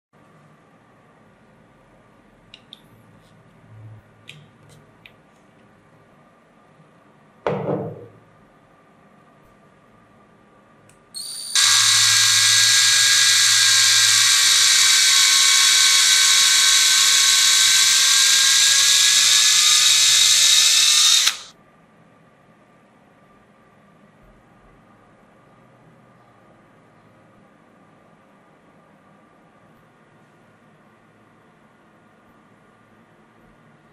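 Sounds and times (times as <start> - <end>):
electric drill whining: 11.2 - 21.5.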